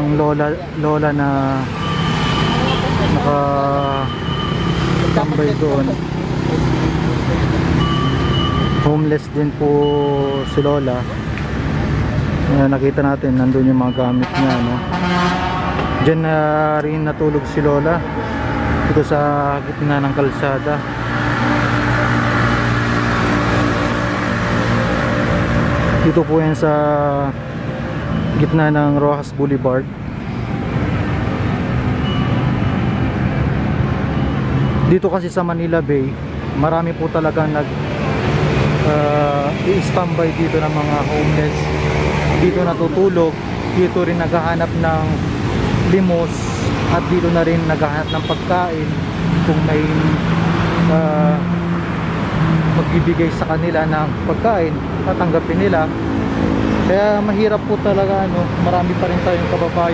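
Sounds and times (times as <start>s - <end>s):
road traffic hum: 0.0s - 59.9s
vehicle engines passing: 0.0s - 59.9s
high-pitched tone: 1.8s - 6.0s, 7.7s - 11.2s.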